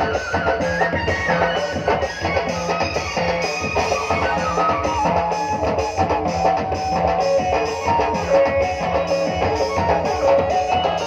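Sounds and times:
electronic keyboard melody: 0.0s - 11.0s
steady beat: 0.0s - 11.0s.

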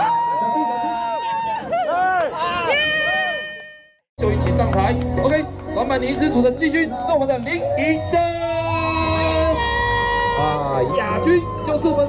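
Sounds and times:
person cheering and whooping: 0.0s - 3.5s.

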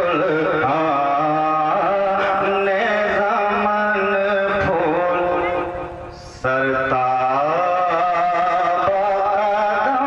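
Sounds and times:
man singing devotional chant: 0.0s - 10.0s.

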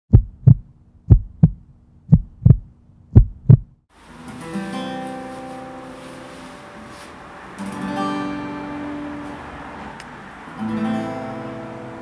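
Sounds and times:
heartbeat thumps: 0.1s - 3.8s.

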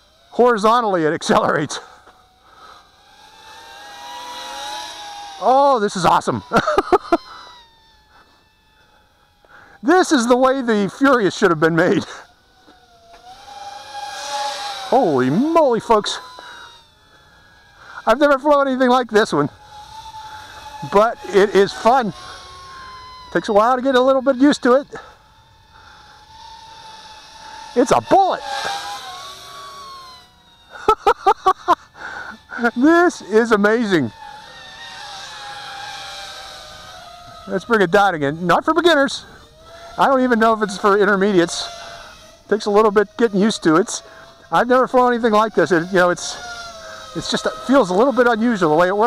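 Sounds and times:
drone propellers whining: 0.0s - 49.0s.

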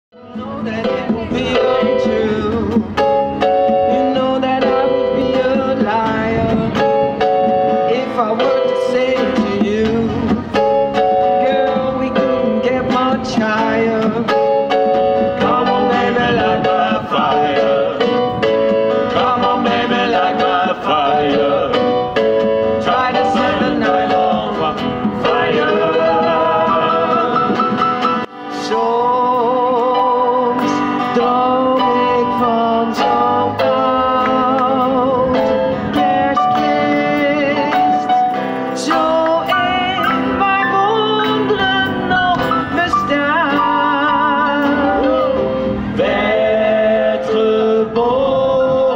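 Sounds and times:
acoustic guitar playing: 0.2s - 48.1s.

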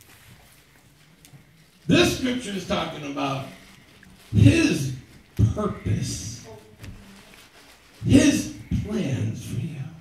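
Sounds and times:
man speaking: 1.9s - 3.7s, 4.3s - 6.5s, 8.0s - 10.0s.

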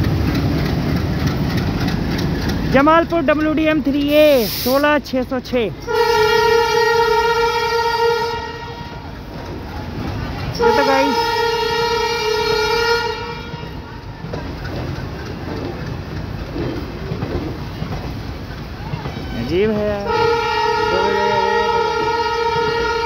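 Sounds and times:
railway coaches rolling past: 0.0s - 23.0s
locomotive horn blasts: 5.8s - 9.0s, 10.5s - 13.9s, 19.2s - 23.0s.

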